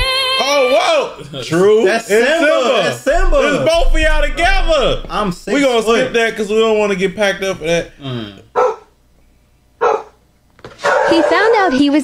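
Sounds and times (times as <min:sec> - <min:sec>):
dog barking: 0:08.6 - 0:08.9, 0:09.8 - 0:10.2, 0:10.8 - 0:11.8.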